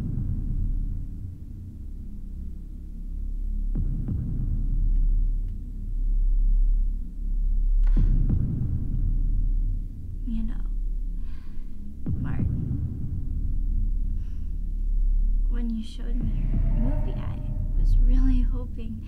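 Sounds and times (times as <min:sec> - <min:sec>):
low throbbing drone: 0:00.0 - 0:19.0
deep hits: 0:10.9 - 0:19.0
faint whispers: 0:15.6 - 0:19.0.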